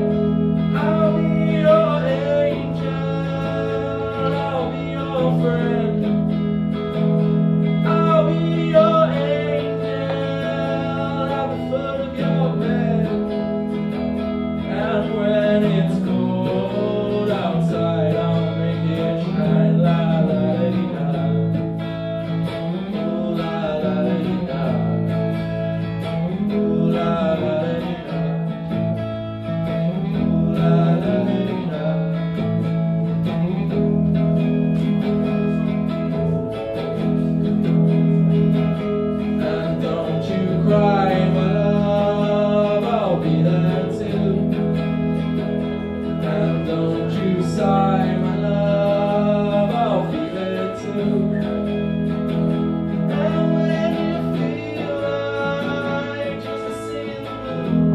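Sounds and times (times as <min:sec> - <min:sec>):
man singing into a microphone: 0:00.0 - 0:06.5, 0:07.6 - 0:22.0, 0:22.7 - 0:29.0, 0:29.8 - 0:35.6, 0:38.8 - 0:57.9
electric guitar: 0:00.0 - 0:57.9.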